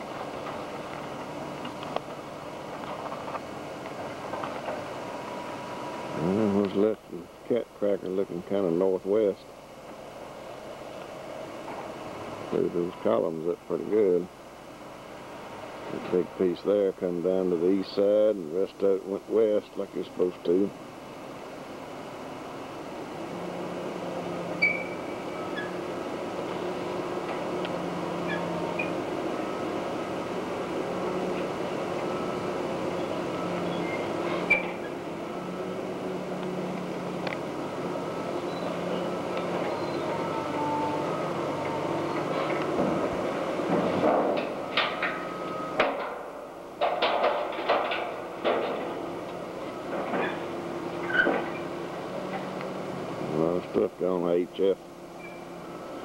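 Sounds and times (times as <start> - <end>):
machinery humming: 0.0 - 56.0
sharp knocks and clanks: 43.6 - 45.2, 45.8 - 49.0.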